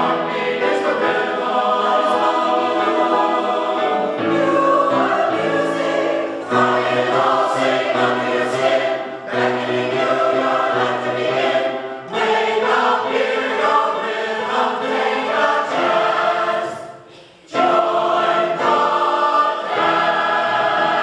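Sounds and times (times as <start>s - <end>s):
mixed choir singing: 0.0s - 21.0s
singers breathing: 17.0s - 17.5s.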